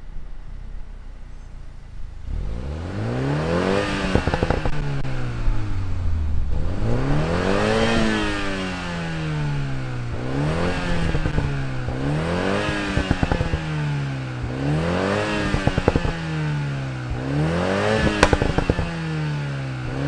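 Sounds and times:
car engine revving: 0:00.0 - 0:20.0
exhaust crackles: 0:00.0 - 0:20.0.

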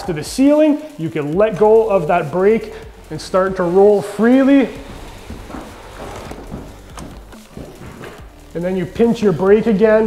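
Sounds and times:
drywall tool spreading compound: 0:01.6 - 0:06.7.

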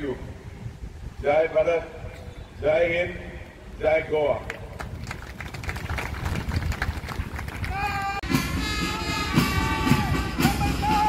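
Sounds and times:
people clapping: 0:04.4 - 0:08.2
marching band playing: 0:07.8 - 0:11.0.

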